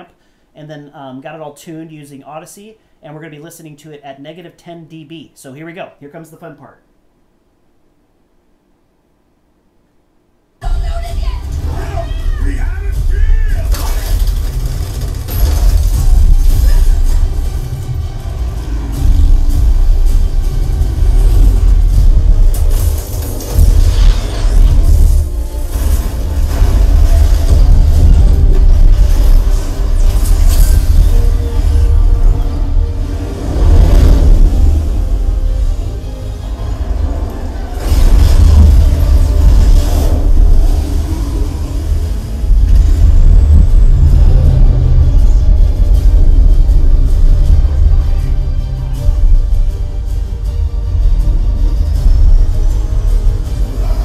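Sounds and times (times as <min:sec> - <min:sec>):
action film soundtrack with deep bass: 0:10.6 - 0:54.0.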